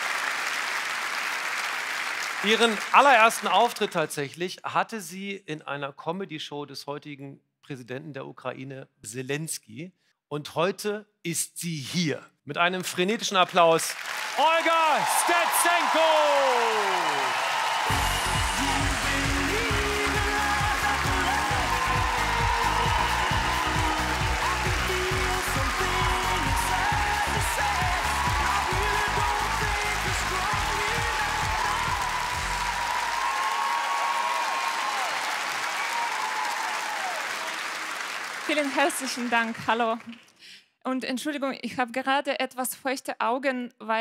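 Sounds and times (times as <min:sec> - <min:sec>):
audience applauding: 0:00.0 - 0:04.0, 0:13.3 - 0:40.2
music with beat and bassline: 0:17.8 - 0:32.9.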